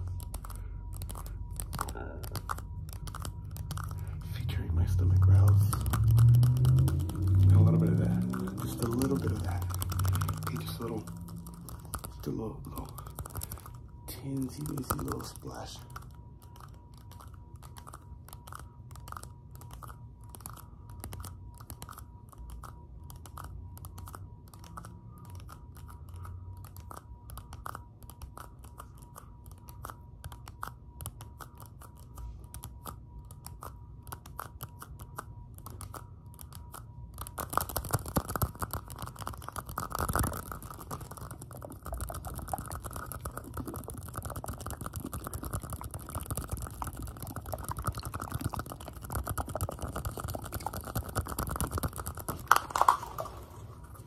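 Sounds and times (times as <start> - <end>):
fingertips tapping plastic cups: 0.0 - 16.0, 37.2 - 54.0
plastic rubbing and crinkling: 0.0 - 18.4, 35.6 - 54.0.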